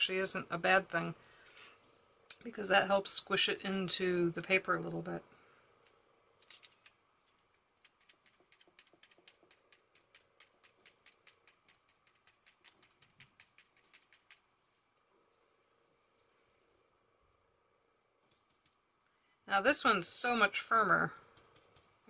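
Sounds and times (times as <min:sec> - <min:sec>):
foam pouncer tapping paper: 0:07.8 - 0:14.5.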